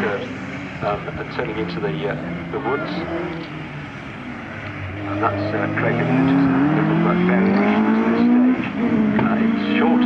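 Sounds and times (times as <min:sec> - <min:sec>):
rally car engine running: 0:00.0 - 0:10.0.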